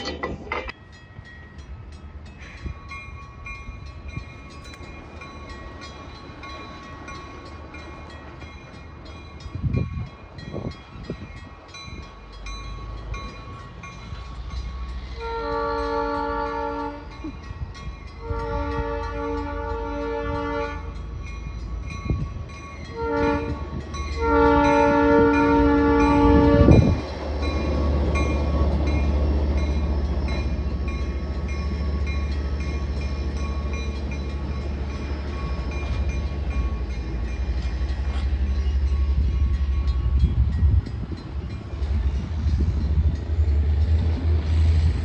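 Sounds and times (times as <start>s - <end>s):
train cars rumbling over rails: 0.0s - 45.0s
locomotive air horn blasts: 15.1s - 17.2s, 18.2s - 21.0s, 22.9s - 27.0s.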